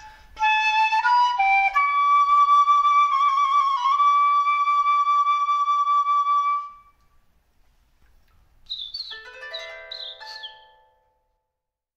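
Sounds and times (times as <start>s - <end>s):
bird-like chirps: 8.6s - 10.8s
ringing chime tones: 9.1s - 11.2s.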